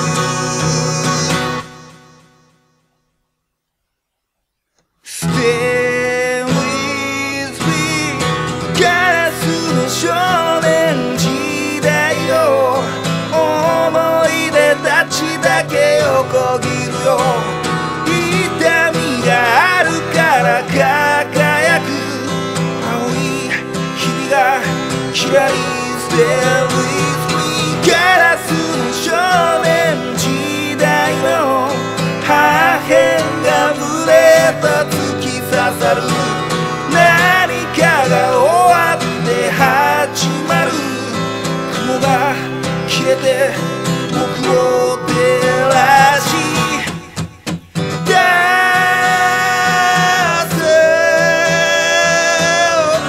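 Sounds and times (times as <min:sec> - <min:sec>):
person singing: 0:00.0 - 0:02.0, 0:05.0 - 0:47.3, 0:48.0 - 0:53.0
guitar: 0:00.0 - 0:53.0.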